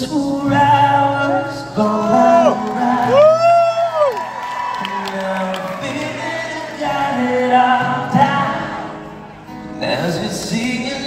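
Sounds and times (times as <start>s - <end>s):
acoustic guitar minor chords: 0.0s - 3.8s, 4.8s - 11.0s
crowd cheering: 2.0s - 9.2s
audience member whooping: 2.1s - 6.3s.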